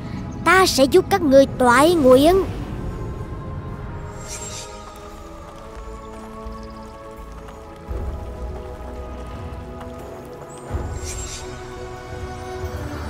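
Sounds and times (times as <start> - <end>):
film music held chords: 0.0 - 13.0
low rumble: 1.1 - 12.0.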